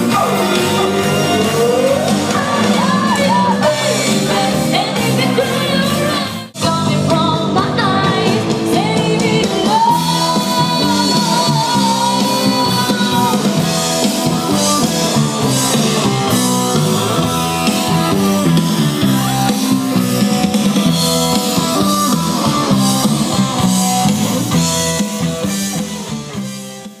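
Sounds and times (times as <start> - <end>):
live rock band playing: 0.0 - 27.0.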